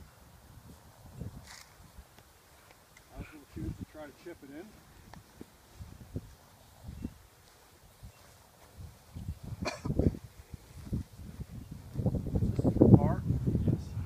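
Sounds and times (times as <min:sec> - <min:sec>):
wind on microphone: 0:00.0 - 0:02.2, 0:03.1 - 0:04.0, 0:04.8 - 0:14.0
footsteps on grass: 0:00.6 - 0:13.0.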